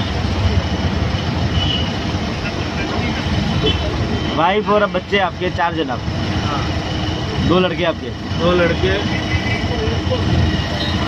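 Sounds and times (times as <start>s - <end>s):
auto-rickshaw engine rumbling: 0.0s - 11.0s
city traffic noise: 0.0s - 11.0s.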